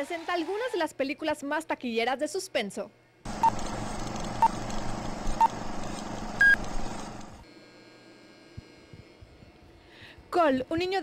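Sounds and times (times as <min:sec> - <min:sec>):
short electronic beeps: 0:06.4 - 0:06.6.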